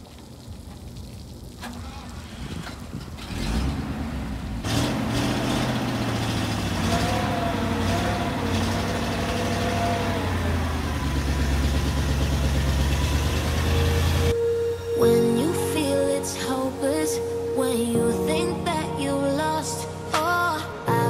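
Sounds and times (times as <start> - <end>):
truck engine running: 1.7 - 15.6.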